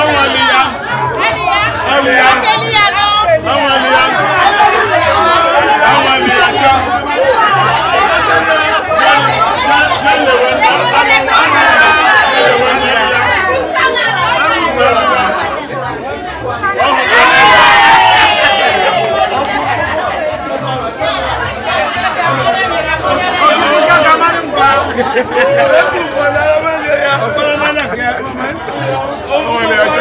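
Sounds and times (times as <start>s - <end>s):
women chattering: 0.0s - 30.0s.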